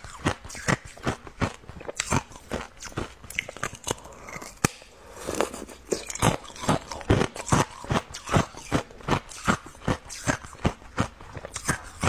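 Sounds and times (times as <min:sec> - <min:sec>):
ice crunching being chewed: 0:00.0 - 0:12.0.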